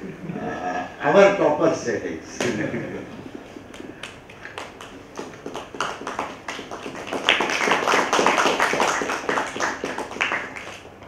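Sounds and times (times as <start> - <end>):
audience applause: 3.7 - 11.0.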